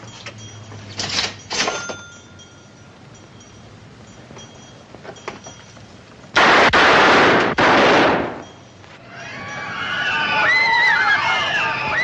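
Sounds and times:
machine-gun fire: 0:06.4 - 0:08.4.

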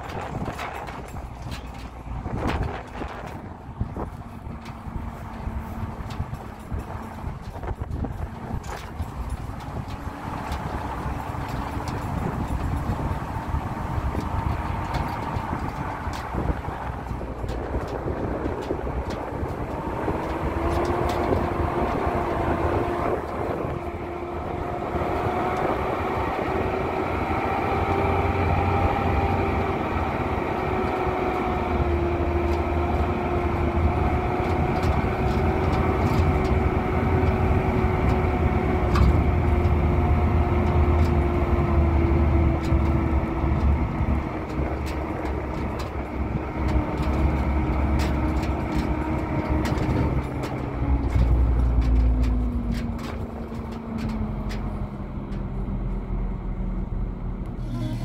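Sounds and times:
sharp clicks and knocks: 0:00.0 - 0:29.8, 0:30.6 - 0:55.7
engine whine: 0:00.0 - 0:58.0
vehicle engine drone: 0:00.0 - 0:58.0.

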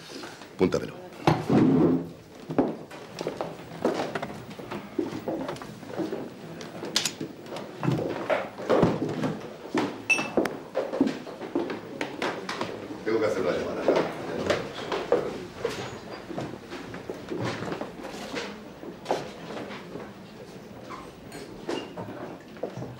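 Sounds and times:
background chatter: 0:00.0 - 0:08.7, 0:10.6 - 0:22.7.

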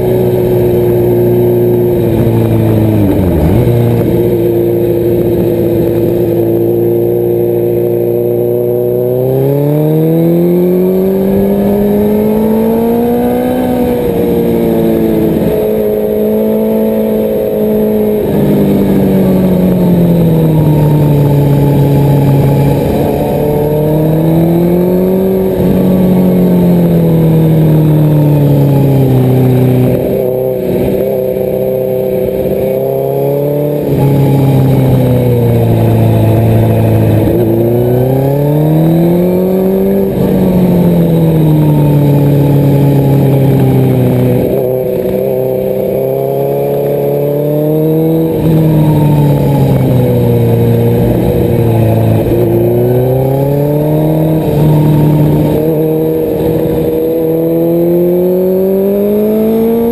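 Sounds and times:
motorcycle engine at speed: 0:00.0 - 0:59.9.

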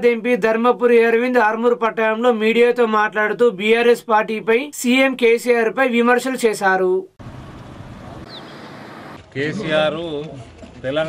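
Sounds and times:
high falling chirp: 0:08.2 - 0:09.2.

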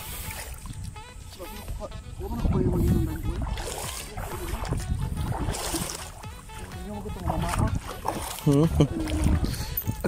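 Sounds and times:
water sloshing underfoot: 0:00.0 - 0:10.0
wind rumble on microphone: 0:00.0 - 0:10.0.

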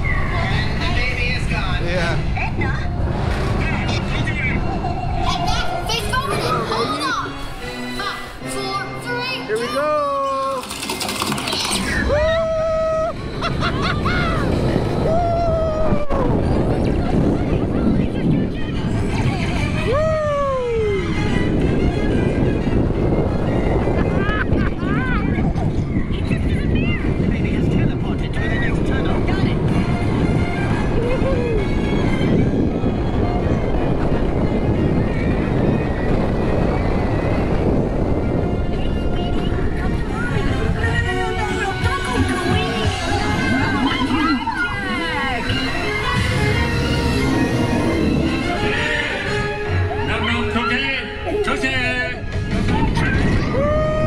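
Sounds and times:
ride rumble: 0:00.0 - 0:07.6, 0:10.8 - 0:51.4
rushing wind: 0:00.0 - 0:54.0.

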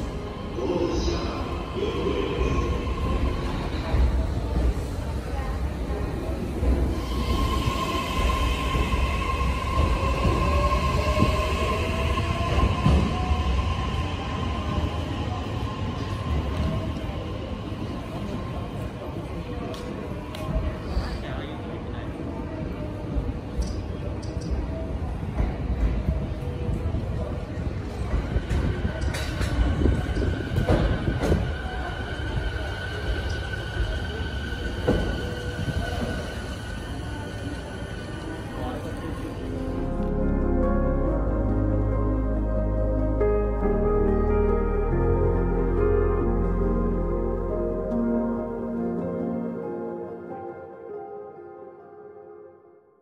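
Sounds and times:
train wheels rumbling on rail: 0:00.0 - 0:21.2, 0:23.1 - 0:39.6.

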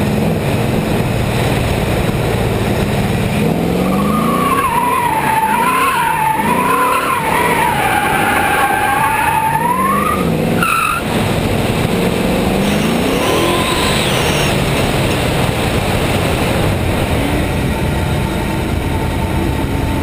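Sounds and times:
car engine revving: 0:00.0 - 0:20.0
tyres squealing: 0:03.8 - 0:11.0, 0:12.6 - 0:14.7.

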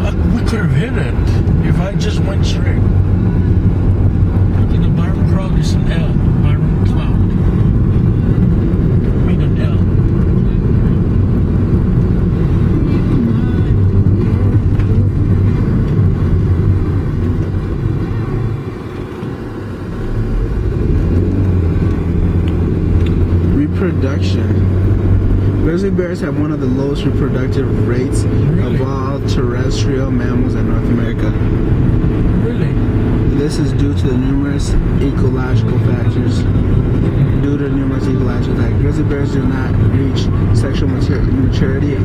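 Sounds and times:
car engine and road noise drone: 0:00.0 - 0:42.0.

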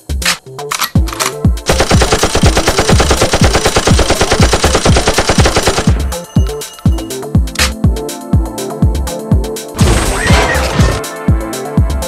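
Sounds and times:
music with heavy beat: 0:00.0 - 0:12.0
rapid automatic gunfire: 0:01.7 - 0:06.0.

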